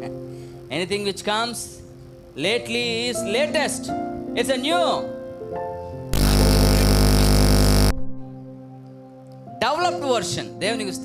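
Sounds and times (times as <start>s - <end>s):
soft sustained keyboard chord: 2.0s - 11.0s
harsh static noise burst: 6.1s - 8.1s.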